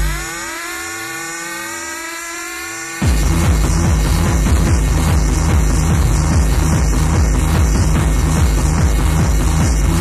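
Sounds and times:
synthesizer sweep over held note: 0.0s - 10.0s
techno kick drum: 3.0s - 10.0s.

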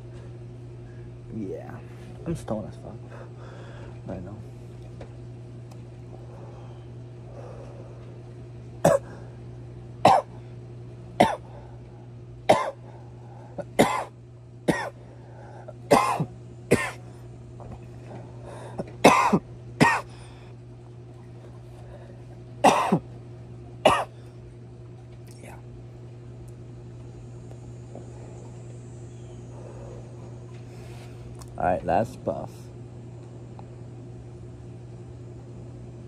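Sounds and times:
man coughing: 8.8s - 9.2s, 10.0s - 10.3s, 11.2s - 11.5s, 12.5s - 12.8s, 13.6s - 14.1s, 14.7s - 15.0s, 15.9s - 17.0s, 18.8s - 20.1s, 22.6s - 23.0s, 23.8s - 24.1s.

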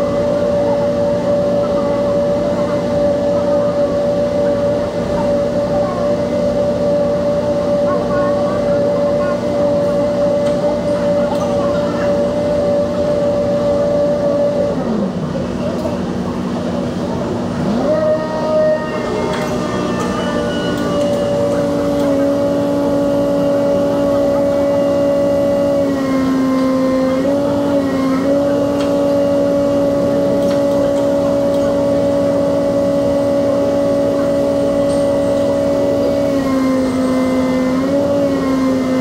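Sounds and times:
engine humming: 0.0s - 39.0s.

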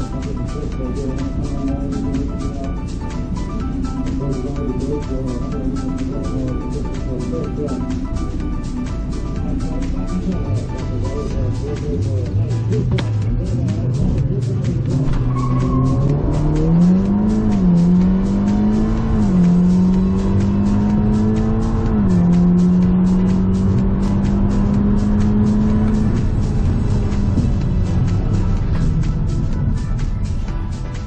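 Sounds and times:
car engine accelerating hard: 0.0s - 31.0s
music with steady beat: 0.0s - 31.0s.

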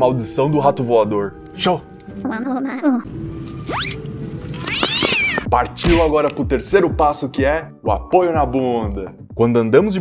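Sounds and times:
background music: 0.0s - 10.0s
cartoon cat screech: 3.7s - 4.0s, 4.6s - 5.5s.

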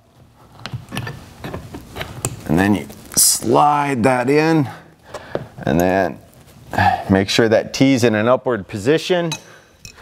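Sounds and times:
metal pipe clicking and scraping: 0.5s - 2.5s, 9.3s - 10.0s.

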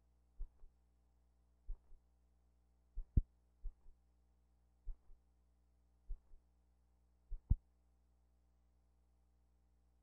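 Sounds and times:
steady low hum: 0.0s - 10.0s
soft low thumps: 2.9s - 4.0s, 7.3s - 7.6s.

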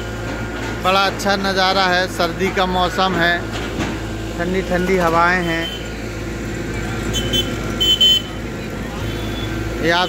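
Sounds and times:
street traffic engine hum: 0.0s - 10.0s
vehicle horn beeps: 5.3s - 6.0s, 7.0s - 8.4s, 9.0s - 10.0s.

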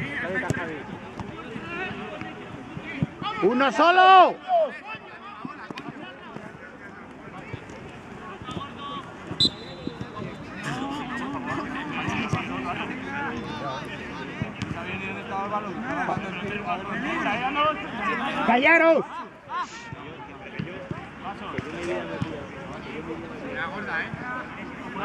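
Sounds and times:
players calling out: 8.3s - 20.2s.

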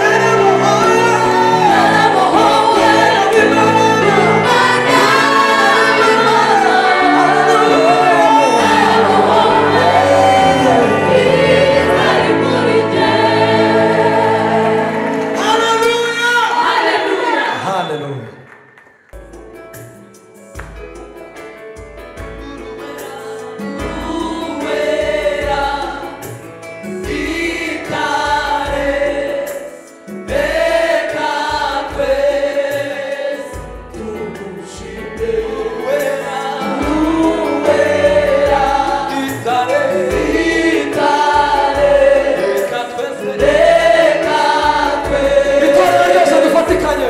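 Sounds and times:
male lead singer: 0.0s - 11.1s, 31.4s - 47.0s
choir singing gospel song: 0.0s - 18.4s, 22.4s - 47.0s.

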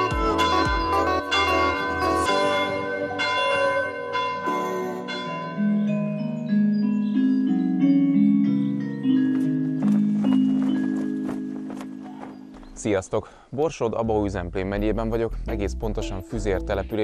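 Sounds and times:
stepping bass line: 0.0s - 1.0s
bell-like notes: 0.0s - 12.8s.

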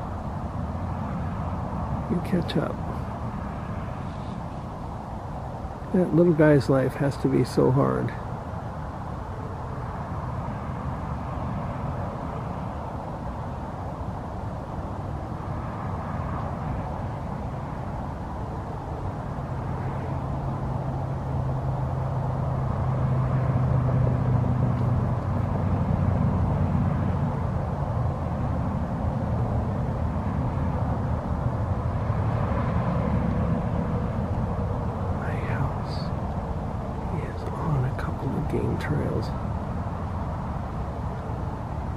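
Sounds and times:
distant engine drone: 0.0s - 41.9s
outdoor background noise: 0.0s - 41.9s.

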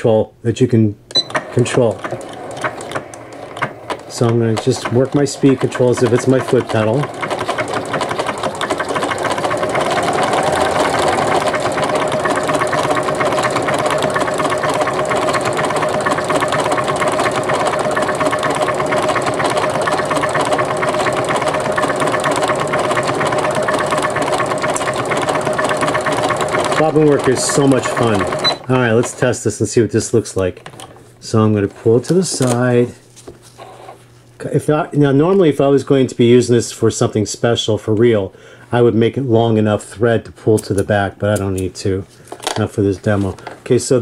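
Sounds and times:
sewing machine stitching: 1.2s - 29.4s.

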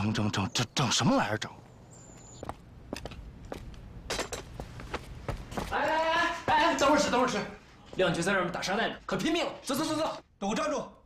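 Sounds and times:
man calling out loudly: 5.7s - 7.4s.

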